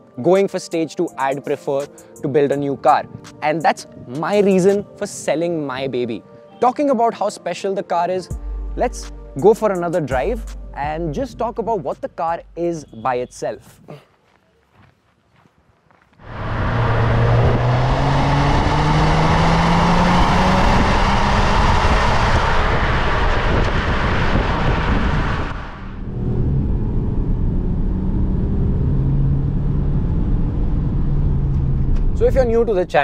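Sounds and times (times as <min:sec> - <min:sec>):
wind noise: 0:15.5 - 0:33.0
diesel engine accelerating: 0:16.2 - 0:33.0
engine drone inside cabin: 0:25.5 - 0:32.2.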